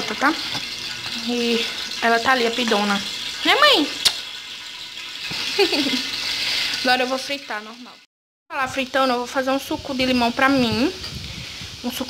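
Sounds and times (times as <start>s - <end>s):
fish sizzling in a pan: 0.0s - 8.0s, 8.6s - 12.0s.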